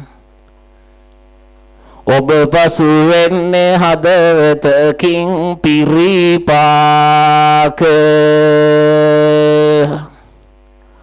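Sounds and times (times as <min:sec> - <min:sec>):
man chanting through loudspeaker: 0:02.1 - 0:10.1.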